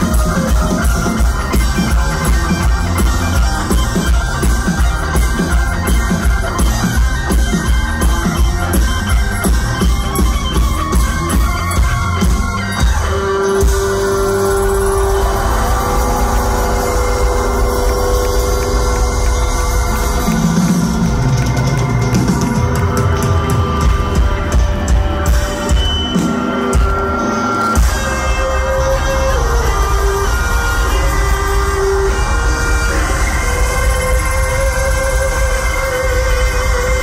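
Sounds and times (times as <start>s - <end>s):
bass guitar: 0.0s - 37.0s
drums: 0.0s - 37.0s
electric guitar long held notes: 0.0s - 37.0s.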